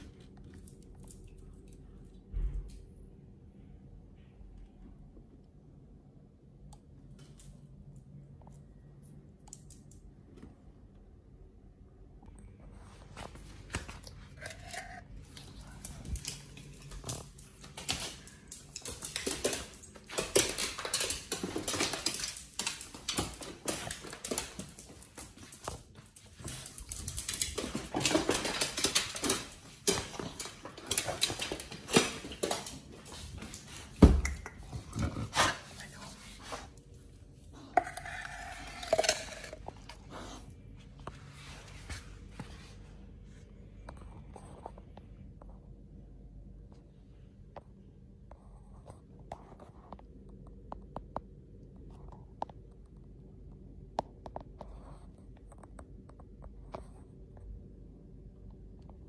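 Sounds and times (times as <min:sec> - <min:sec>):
dog claws clicking on tile floor: 0:00.0 - 0:02.9, 0:06.8 - 0:10.4, 0:13.3 - 0:36.9, 0:37.6 - 0:40.4.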